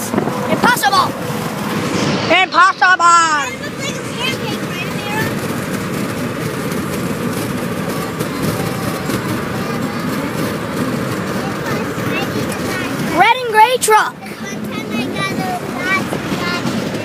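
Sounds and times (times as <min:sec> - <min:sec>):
car cabin road and engine noise: 0:00.0 - 0:17.0.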